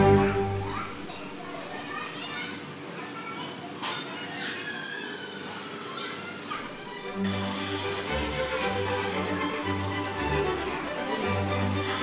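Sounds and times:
children chattering and calling out: 0:00.0 - 0:07.2.

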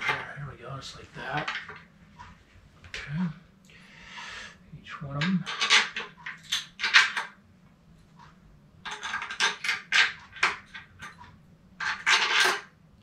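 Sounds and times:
steel bolts and washers clinking: 0:05.4 - 0:07.3, 0:08.8 - 0:12.7.

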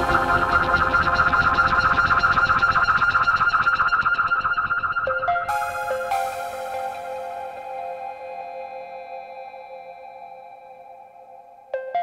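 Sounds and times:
pulsing synthesizer chord: 0:00.0 - 0:11.8.

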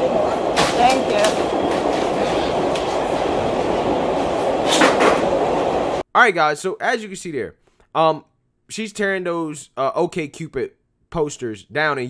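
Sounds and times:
subway car rumble and rattle: 0:00.0 - 0:06.0.

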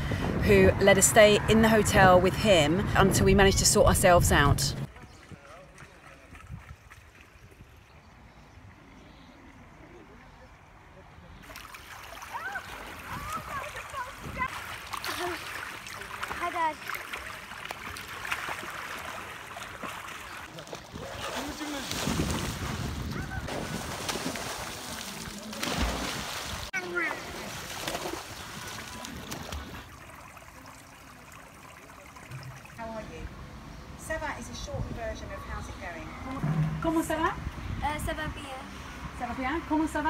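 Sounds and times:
splashing in swimming pool: 0:11.4 - 0:32.8
children calling and shrieking: 0:12.2 - 0:15.6.

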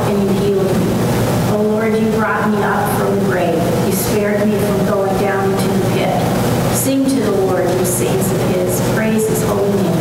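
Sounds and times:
person reading aloud: 0:00.0 - 0:00.8, 0:01.5 - 0:10.0.

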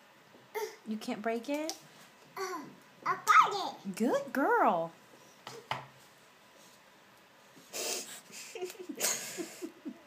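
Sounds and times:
person snorting breath: 0:07.7 - 0:09.6.

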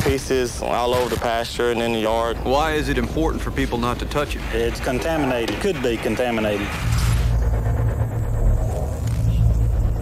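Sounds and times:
deep low rumble: 0:01.5 - 0:10.0.

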